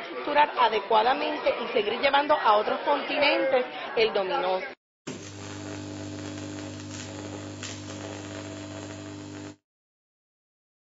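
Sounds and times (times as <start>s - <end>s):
electronic hum of low tones: 5.1s - 9.6s.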